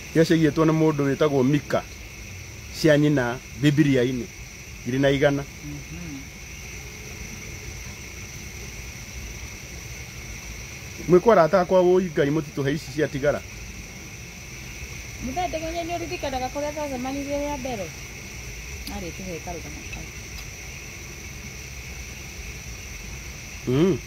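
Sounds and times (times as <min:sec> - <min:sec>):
crickets chirring: 0:00.0 - 0:24.0.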